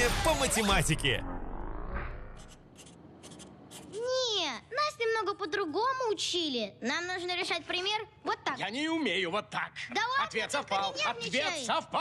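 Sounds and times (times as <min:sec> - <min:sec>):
pencil scratching on paper: 0:02.4 - 0:04.2.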